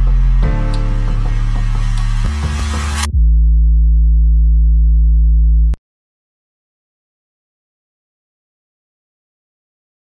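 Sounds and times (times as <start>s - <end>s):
low electronic bass drone: 0.0s - 5.8s.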